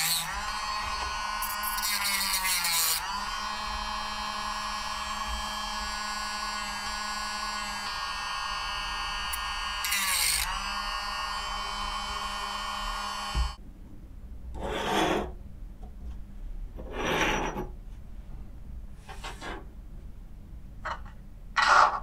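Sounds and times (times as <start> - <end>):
rotary tool whining: 0.0 - 13.6.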